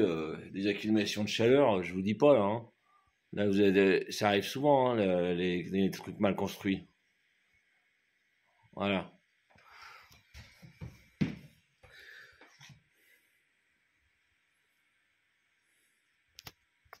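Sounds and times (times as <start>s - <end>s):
faint steady hiss: 0.0s - 17.0s
handling rustling and knocks: 10.2s - 11.6s.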